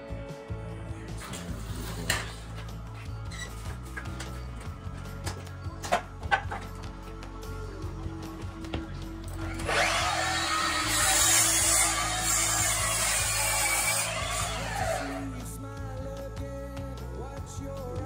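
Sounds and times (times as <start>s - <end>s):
background music: 0.0s - 18.0s
miter saw cutting wood: 9.4s - 15.3s.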